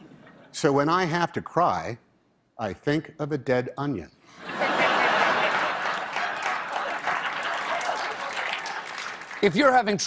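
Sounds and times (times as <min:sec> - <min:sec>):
audience applauding: 0:04.8 - 0:09.9.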